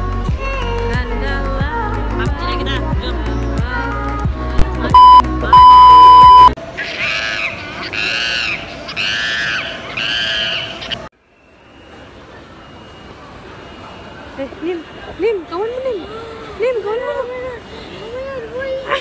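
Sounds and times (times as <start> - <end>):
background music: 0.0 - 6.6
electronic beep: 4.9 - 6.6.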